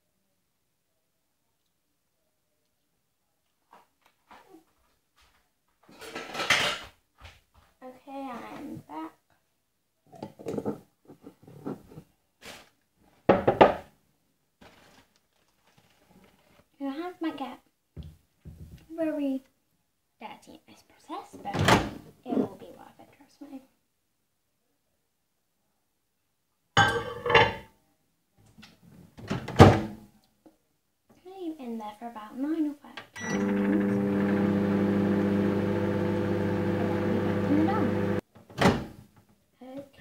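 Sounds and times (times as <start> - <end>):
girl's voice: 7.8 - 9.2, 16.8 - 17.6, 18.9 - 19.5, 20.2 - 21.6, 22.2 - 23.7, 31.2 - 33.0, 37.5 - 37.9, 39.6 - 40.0.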